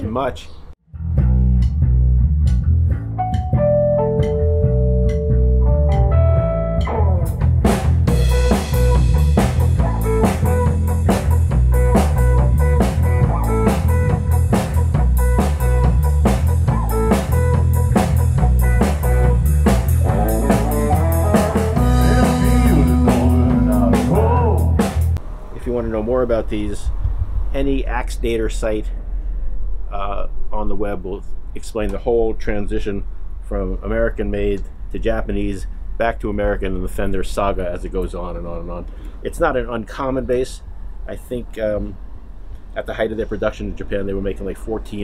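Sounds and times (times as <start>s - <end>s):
electric bass: 0.0s - 45.0s
electric guitar: 1.1s - 25.2s
drum kit with cymbals: 6.8s - 25.2s.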